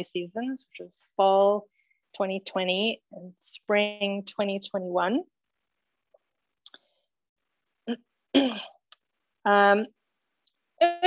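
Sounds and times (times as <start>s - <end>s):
woman clearing her throat: 8.3s - 8.8s.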